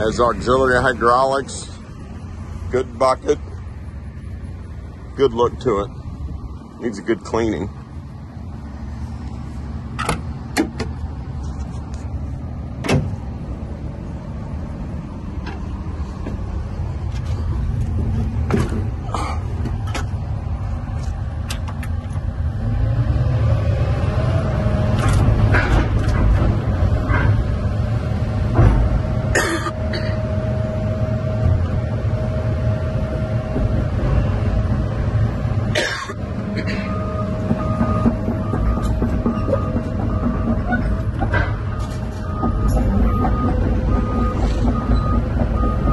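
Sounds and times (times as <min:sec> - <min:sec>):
excavator diesel engine: 0:00.0 - 0:45.9
hydraulic whine: 0:21.7 - 0:45.9.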